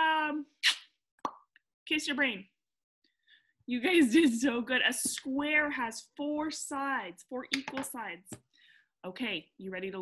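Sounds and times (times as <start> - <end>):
woman speaking: 0.0 - 0.5, 1.9 - 2.6, 3.7 - 8.4, 9.0 - 10.0
short breath: 8.5 - 8.9.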